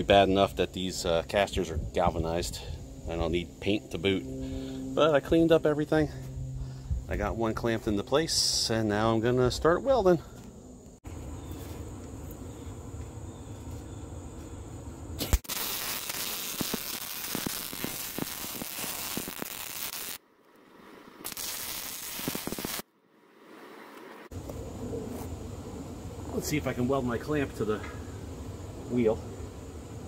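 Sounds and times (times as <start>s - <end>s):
arc welding crackling hiss: 15.2s - 20.2s, 21.2s - 22.8s
low steady rumble: 24.3s - 30.0s.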